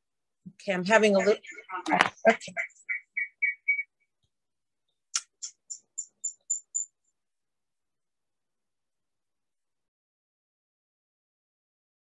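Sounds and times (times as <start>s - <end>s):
garbled woman's voice: 0.5s - 2.9s.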